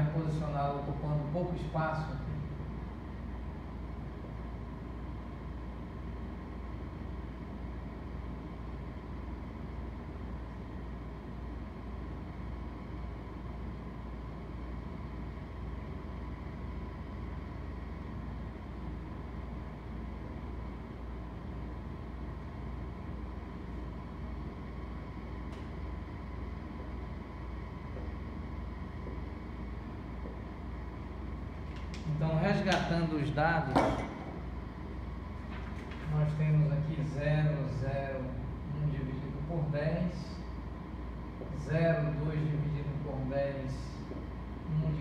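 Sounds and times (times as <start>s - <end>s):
low room hum: 0.0s - 45.0s.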